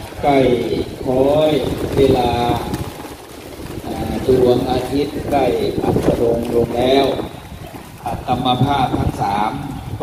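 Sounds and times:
man speaking into a microphone: 0:00.0 - 0:02.9, 0:03.8 - 0:10.0
wind rumble on microphone: 0:00.0 - 0:10.0.

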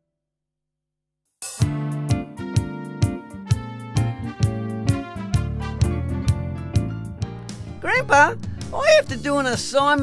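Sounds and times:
title music: 0:04.0 - 0:10.0.

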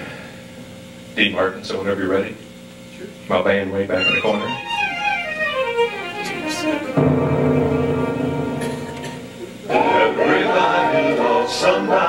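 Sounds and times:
live band playing: 0:04.0 - 0:10.1.

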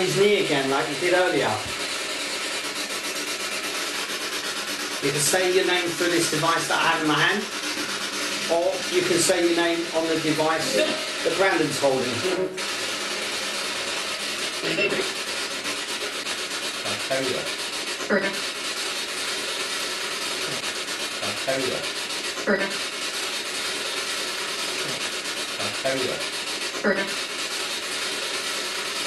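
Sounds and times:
rasping radio static: 0:00.0 - 0:01.8, 0:05.0 - 0:12.6, 0:13.8 - 0:15.4, 0:16.7 - 0:18.6, 0:20.3 - 0:22.9, 0:24.8 - 0:27.3
clipped voice fragments: 0:08.4 - 0:12.5, 0:16.7 - 0:18.6, 0:20.5 - 0:22.9, 0:25.6 - 0:27.2.

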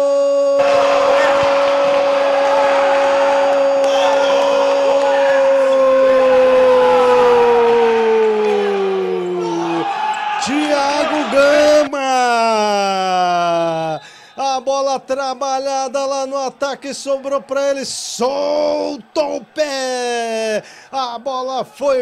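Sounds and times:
commentator's drawn-out goal cry: 0:00.0 - 0:22.0
shouted held call: 0:00.6 - 0:14.4.

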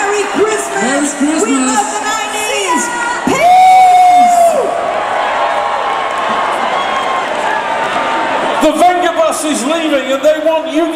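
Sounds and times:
crowd cheering and whooping: 0:02.7 - 0:09.3.

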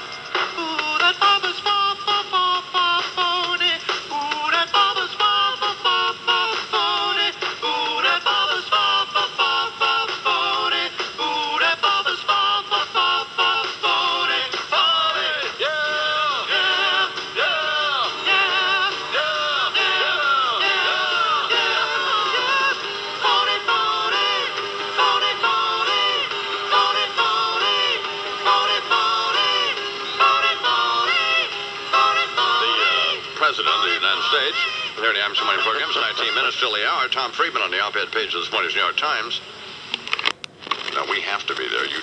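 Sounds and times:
instrumental backing music: 0:00.0 - 0:37.1
man singing: 0:00.6 - 0:37.9.

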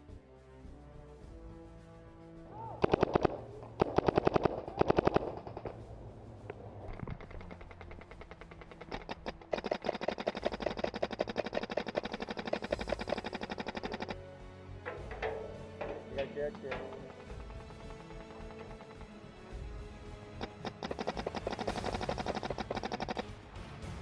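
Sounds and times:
paintball markers firing: 0:02.8 - 0:05.9, 0:06.5 - 0:14.2, 0:15.1 - 0:19.2, 0:20.3 - 0:23.3.

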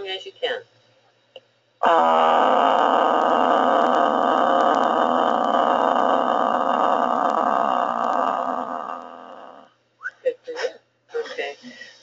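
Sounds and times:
woman holding rough vowel: 0:01.8 - 0:09.7.

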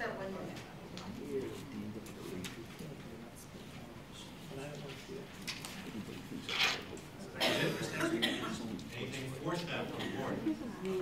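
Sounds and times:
murmur of conversation: 0:00.0 - 0:11.0.

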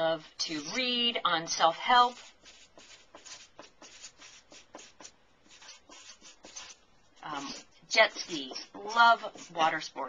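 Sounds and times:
marker scratching on paper: 0:01.7 - 0:10.0.

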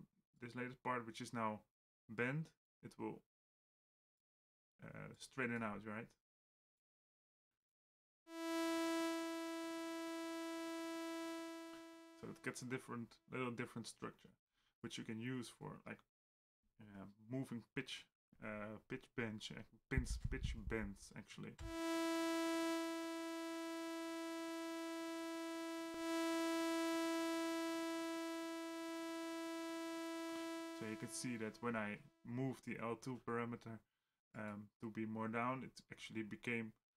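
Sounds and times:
synthesizer held note: 0:08.3 - 0:12.5, 0:21.6 - 0:31.8.

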